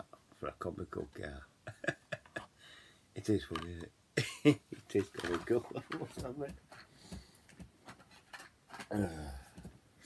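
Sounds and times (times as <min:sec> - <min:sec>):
small objects ticking and rustling: 0:04.9 - 0:09.0
man murmuring: 0:08.9 - 0:09.6.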